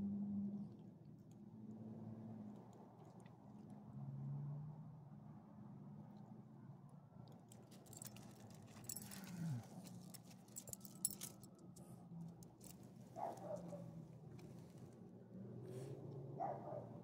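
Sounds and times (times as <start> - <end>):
collar tag jingling: 7.5 - 11.8.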